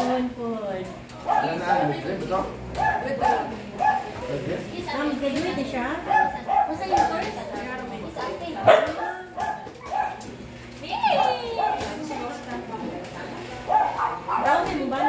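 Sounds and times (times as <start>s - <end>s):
people talking: 0.0s - 15.0s.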